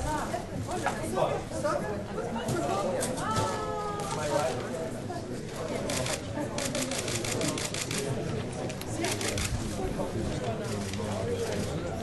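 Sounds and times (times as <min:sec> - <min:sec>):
murmur of voices: 0:00.0 - 0:12.0
camera shutters clicking in bursts: 0:05.9 - 0:08.1, 0:09.0 - 0:09.6.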